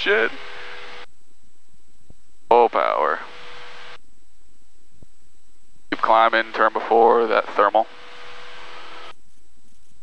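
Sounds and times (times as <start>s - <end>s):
faint low cabin noise: 0.0s - 10.0s
intercom hiss: 5.9s - 9.1s.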